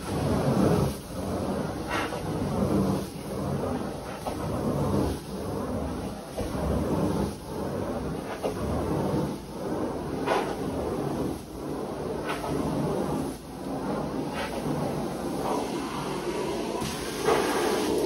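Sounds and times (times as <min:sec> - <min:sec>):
carpet cleaning wand sucking: 0:00.0 - 0:18.0.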